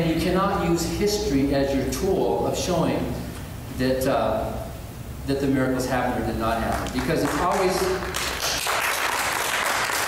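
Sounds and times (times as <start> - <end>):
audience applause: 6.8 - 10.0.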